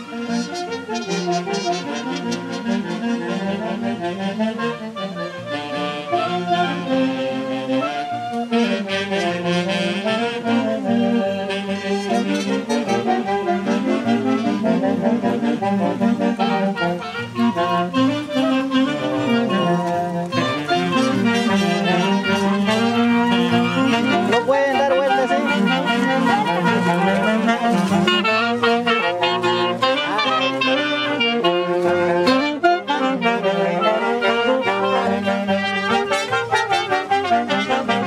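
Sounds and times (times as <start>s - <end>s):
brass band with saxophones: 0.0s - 38.0s
wind instruments playing melody: 0.0s - 38.0s
stepping bass line: 9.2s - 38.0s.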